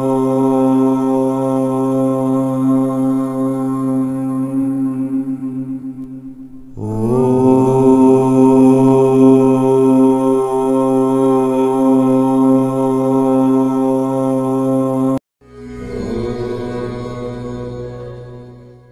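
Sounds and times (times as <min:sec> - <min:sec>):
person chanting: 0:00.0 - 0:18.9
soft music: 0:15.4 - 0:18.9.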